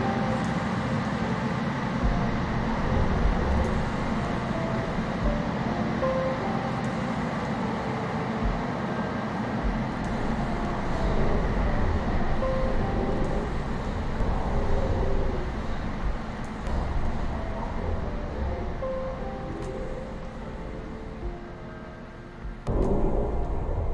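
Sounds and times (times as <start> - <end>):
faint music: 0.0 - 23.9
vehicle rumbling: 1.2 - 6.8, 8.4 - 23.9.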